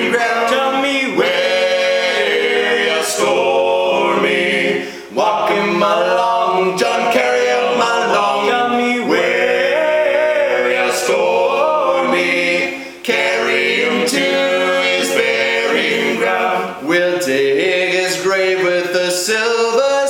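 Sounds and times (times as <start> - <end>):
men singing in harmony: 0.0 - 20.0.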